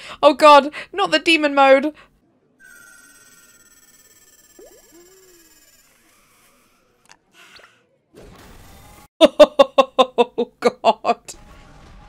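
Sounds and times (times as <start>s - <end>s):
faint high ringing tone: 2.6s - 6.0s.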